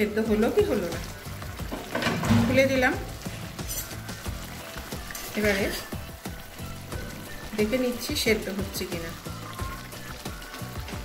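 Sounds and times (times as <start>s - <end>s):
background music: 0.0s - 11.0s
curry sizzling and simmering: 0.0s - 11.0s.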